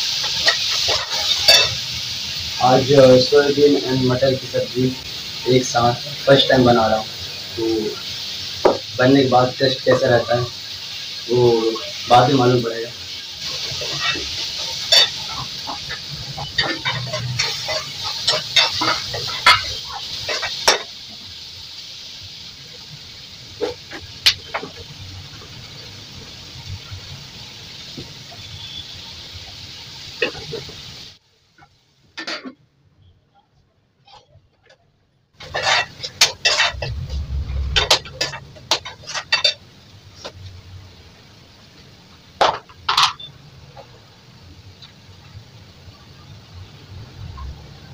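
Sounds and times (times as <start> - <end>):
food sizzling in a pan: 0.0 - 33.1, 35.4 - 47.9
metal spoon scraping a pan: 0.2 - 1.8, 13.4 - 20.9, 35.4 - 39.6
metal spoon scraping a pot: 35.4 - 39.6.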